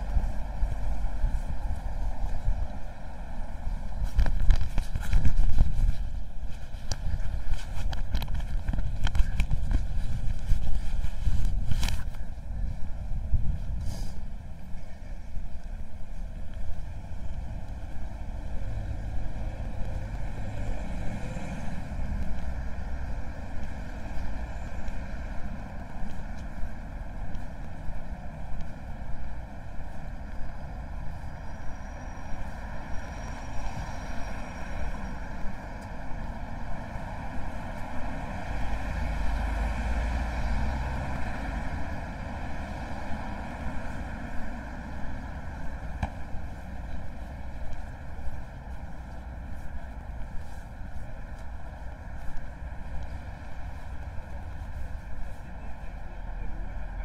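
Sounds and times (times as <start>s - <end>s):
cars passing: 0.0s - 57.0s
low rumble of passing vehicle: 0.0s - 57.0s.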